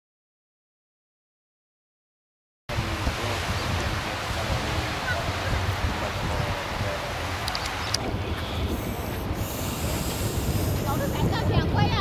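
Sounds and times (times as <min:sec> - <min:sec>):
sea surf: 0:02.7 - 0:12.0
wind against microphone: 0:02.7 - 0:12.0.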